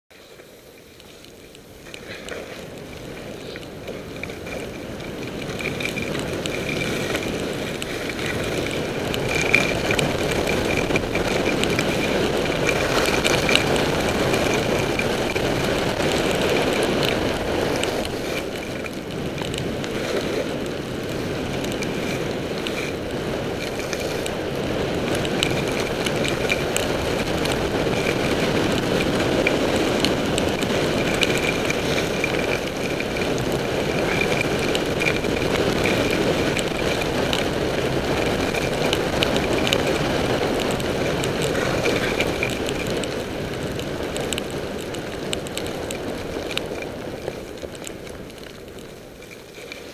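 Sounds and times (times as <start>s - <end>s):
skis sliding on snow: 0.1s - 49.9s
wind rushing over camera: 0.1s - 49.9s.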